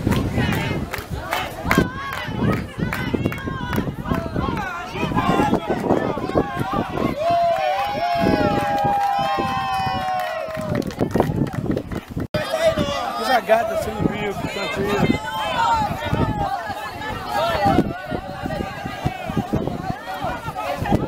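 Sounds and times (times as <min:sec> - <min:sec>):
people shouting and talking: 0:00.0 - 0:21.0.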